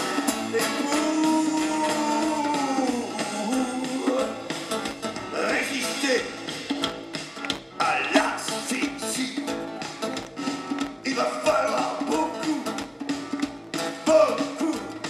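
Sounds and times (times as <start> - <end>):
live band playing amplified song: 0.0 - 15.0.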